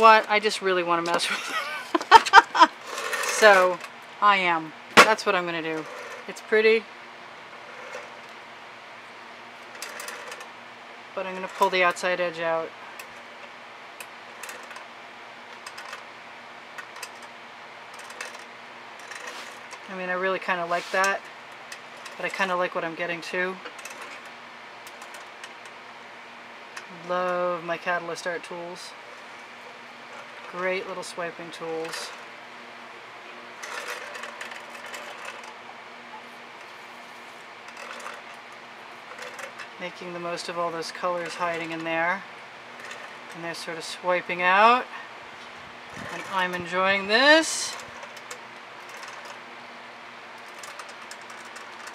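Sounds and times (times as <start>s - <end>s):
low room hum: 0.0s - 51.9s
paint scraping on canvas: 20.7s - 21.0s.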